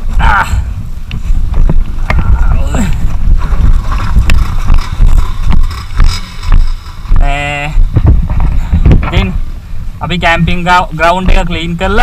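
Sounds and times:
motorcycle engine rumble: 0.0s - 10.0s
wind buffeting microphone: 0.0s - 12.0s
bike jolting over stones: 2.9s - 8.9s.

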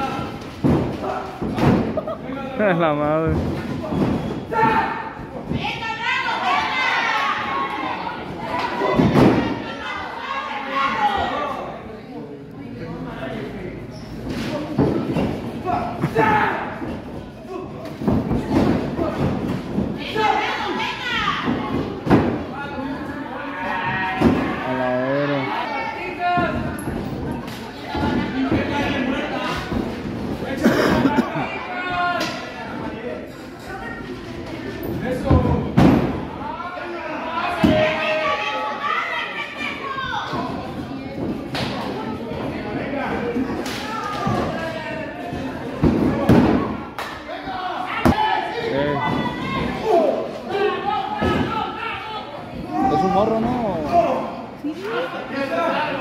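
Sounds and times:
spectators' voices: 0.0s - 56.0s.

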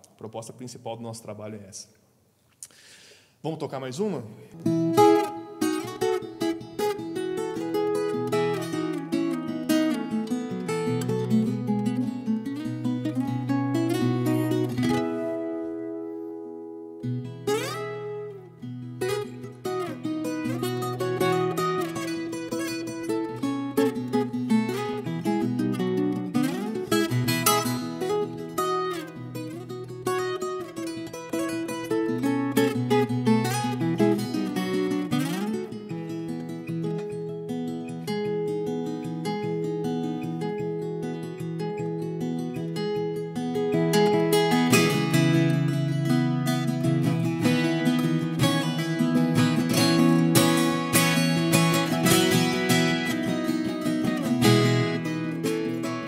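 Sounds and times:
plucked folk guitar: 4.4s - 56.0s.

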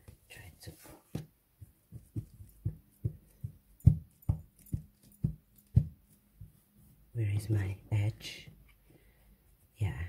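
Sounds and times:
hands patting fabric: 0.0s - 7.8s.

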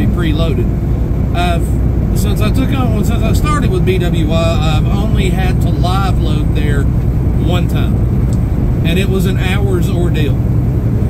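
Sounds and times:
truck engine and road noise: 0.0s - 11.0s
person speaking: 1.4s - 8.0s, 8.8s - 10.4s.

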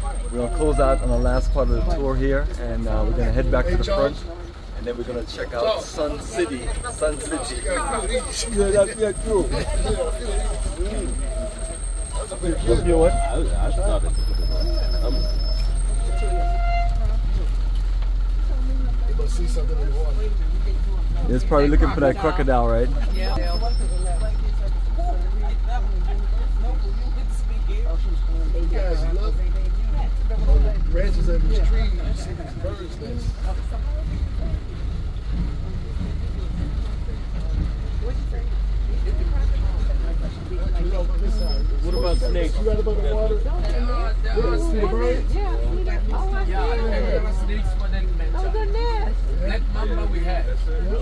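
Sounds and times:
faint passenger voices: 0.0s - 51.0s
vehicle engine rumble: 0.0s - 51.0s.

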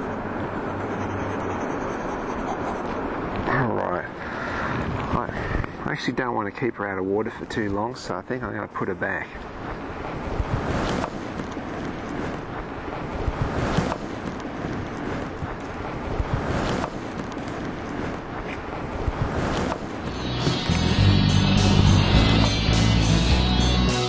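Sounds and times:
wind on microphone: 9.6s - 20.1s
guitar rock music: 20.1s - 24.0s.

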